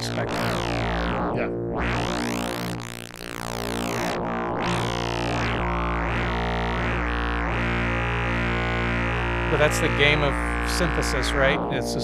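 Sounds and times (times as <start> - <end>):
synthesizer drone with filter sweeps: 0.0 - 12.0.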